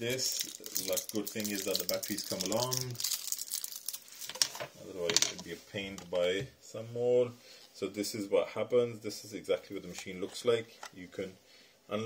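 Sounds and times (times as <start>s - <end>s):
plastic packaging crinkling: 0.0s - 4.7s.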